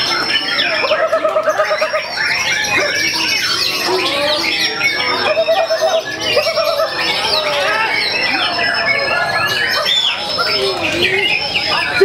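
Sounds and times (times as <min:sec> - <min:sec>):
birds singing whistles and trills: 0:00.0 - 0:12.0
fast low bird trill: 0:00.0 - 0:12.0.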